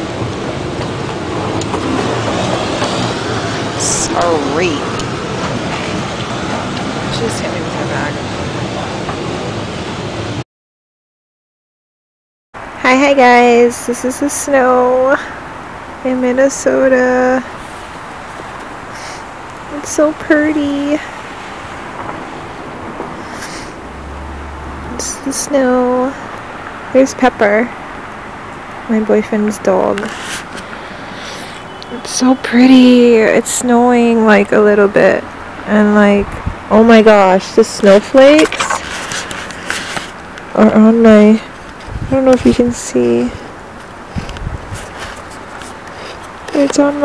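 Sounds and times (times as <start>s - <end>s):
moving walkway rumble and clatter: 0.0s - 10.4s, 12.6s - 47.0s
outdoor background noise: 0.0s - 10.4s, 12.6s - 47.0s
low rumble: 21.9s - 25.0s
brief rustle: 30.0s - 31.6s, 38.4s - 40.2s, 44.1s - 46.6s.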